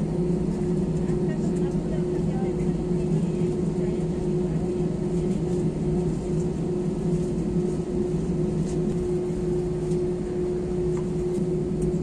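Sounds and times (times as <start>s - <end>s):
airliner cabin drone: 0.0s - 12.0s.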